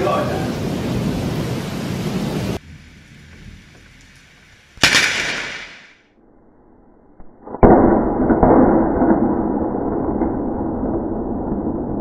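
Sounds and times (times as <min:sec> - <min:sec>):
heavy rain hissing: 0:00.0 - 0:06.0.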